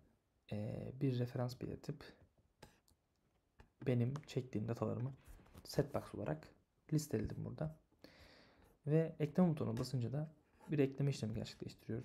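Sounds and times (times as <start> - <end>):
man speaking: 0.5 - 2.2, 3.8 - 7.8, 8.8 - 12.0.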